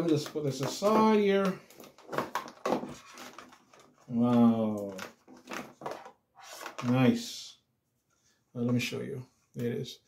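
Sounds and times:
scuffs and knocks of handling: 0:00.0 - 0:07.1.

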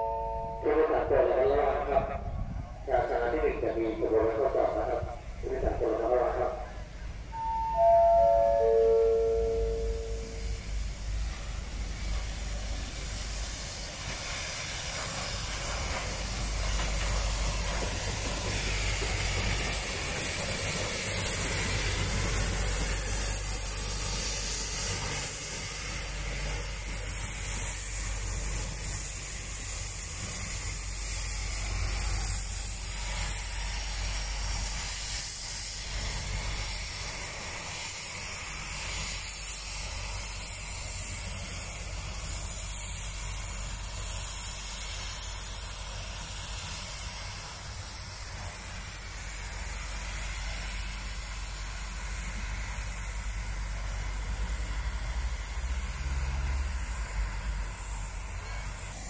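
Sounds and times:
high-pitched whine: 0:00.0 - 0:17.6, 0:18.5 - 0:59.0
steam train rumbling past: 0:00.0 - 0:59.0.

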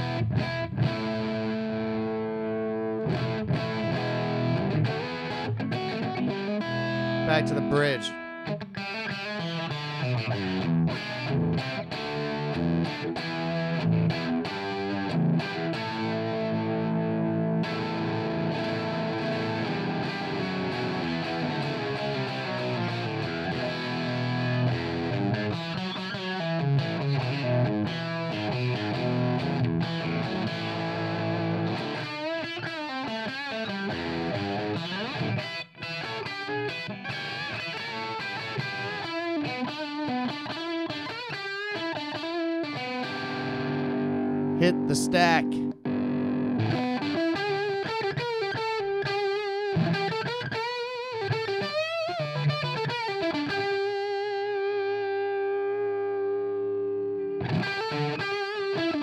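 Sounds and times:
overdriven electric guitar: 0:00.0 - 0:59.0.

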